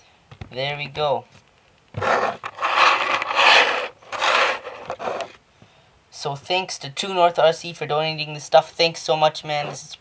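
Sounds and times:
hands sliding parts on tabletop: 0:02.0 - 0:05.4.

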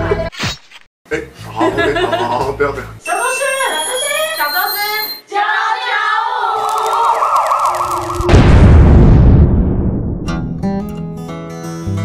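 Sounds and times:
warbling siren-like whistle: 0:06.7 - 0:08.4
cartoon explosion boom: 0:07.5 - 0:10.8.

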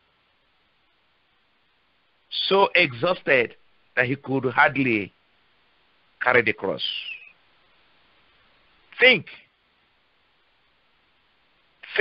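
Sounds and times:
faint steady hiss: 0:00.0 - 0:12.0
person speaking: 0:02.3 - 0:05.1, 0:06.2 - 0:07.3, 0:08.9 - 0:09.4.

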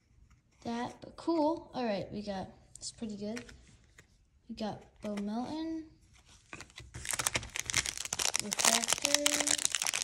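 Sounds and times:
foil wrapper crinkling and tearing: 0:06.9 - 0:10.0.

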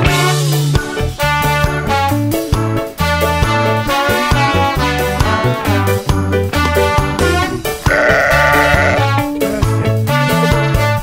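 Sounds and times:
background music with beat: 0:00.0 - 0:11.0
sheep bleating: 0:07.8 - 0:09.7.

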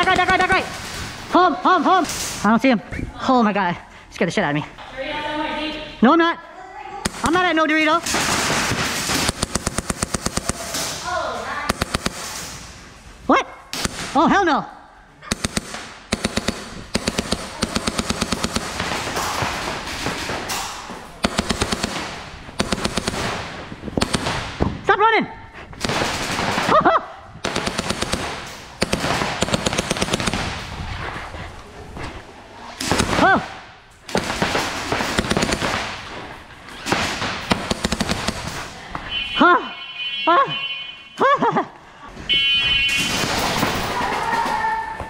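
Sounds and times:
rapid airsoft gunfire: 0:00.0 - 0:01.1, 0:07.0 - 0:11.0, 0:11.6 - 0:12.6, 0:13.7 - 0:14.2, 0:15.3 - 0:24.6, 0:25.8 - 0:30.7, 0:32.8 - 0:36.2, 0:36.8 - 0:38.8.

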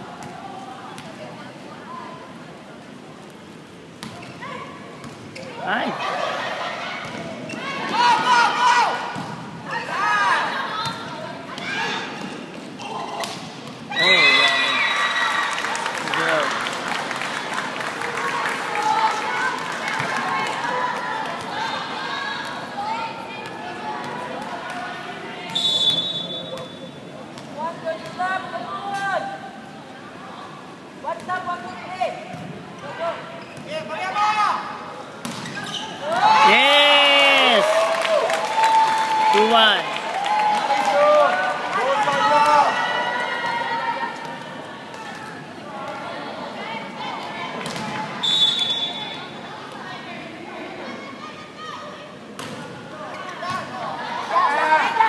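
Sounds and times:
spectators shouting and cheering: 0:13.9 - 0:25.4, 0:36.0 - 0:44.9
short high whistle: 0:25.6 - 0:26.6, 0:48.2 - 0:49.1.

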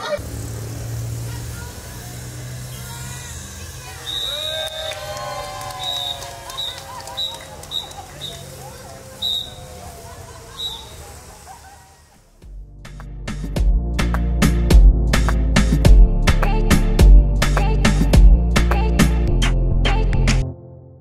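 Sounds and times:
crowd cheering and calling out: 0:02.8 - 0:12.4
high whistle-like tones: 0:03.8 - 0:05.0, 0:05.6 - 0:09.9, 0:10.5 - 0:11.1.

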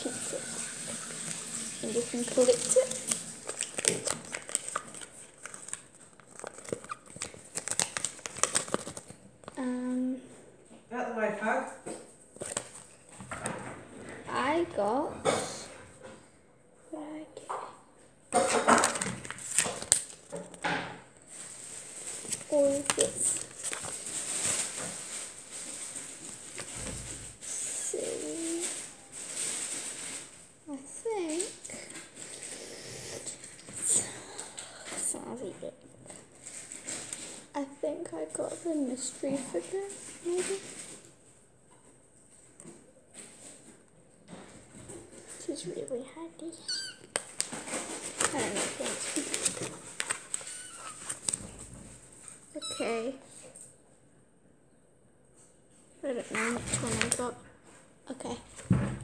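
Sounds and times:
paper and cardboard handling: 0:00.0 - 0:09.6, 0:12.3 - 0:13.4, 0:18.4 - 0:20.6, 0:21.3 - 0:30.4, 0:38.5 - 0:41.1, 0:47.1 - 0:52.3, 0:56.3 - 0:57.4
kitten meowing: 0:46.6 - 0:47.1.

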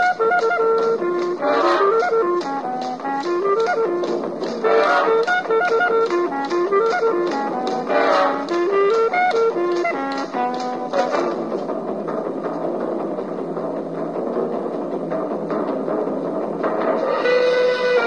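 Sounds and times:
steady drum beat: 0:00.0 - 0:18.0
swing dance band instrumental: 0:00.0 - 0:18.0.

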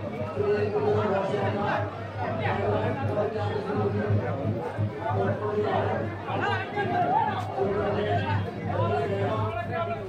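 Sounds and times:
crowd talking and calling out: 0:00.0 - 0:10.0
music: 0:00.0 - 0:10.0.

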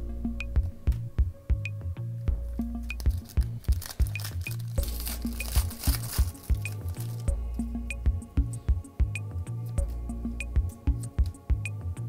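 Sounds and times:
electronic music with steady beat: 0:00.0 - 0:12.0
foil pack being torn open: 0:02.9 - 0:07.3.

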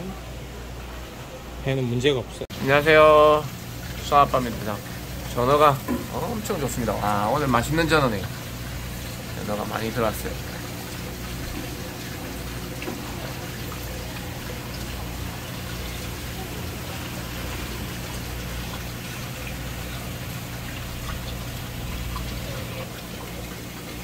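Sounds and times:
low pump hum: 0:00.0 - 0:24.0
running water rushing: 0:00.0 - 0:24.0.

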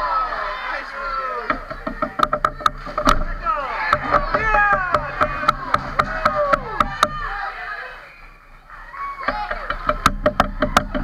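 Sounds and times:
players shouting: 0:00.0 - 0:11.0
hockey sticks clacking on ice: 0:01.4 - 0:07.4, 0:09.2 - 0:11.0.

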